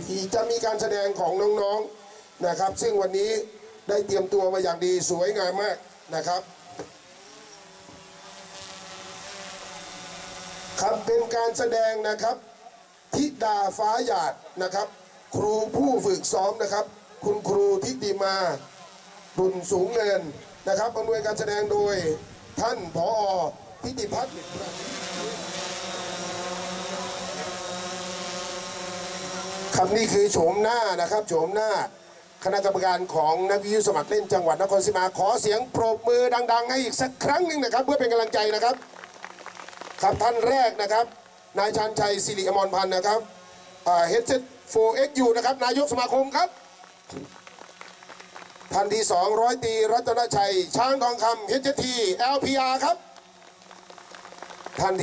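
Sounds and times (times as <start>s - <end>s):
steady drone of even tones: 12.9s - 38.6s
crowd applause: 38.2s - 40.2s, 46.8s - 48.8s, 53.4s - 55.0s.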